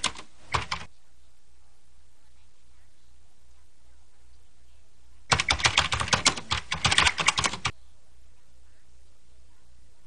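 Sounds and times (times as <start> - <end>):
rapid sharp clicks: 0.0 - 0.9, 5.3 - 7.7
faint low hum: 0.0 - 10.0.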